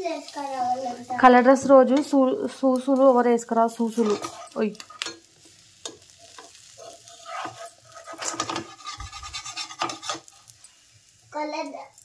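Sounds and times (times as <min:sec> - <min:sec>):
faint sizzling: 0:00.0 - 0:12.0
spatula scraping a pan: 0:03.7 - 0:10.9.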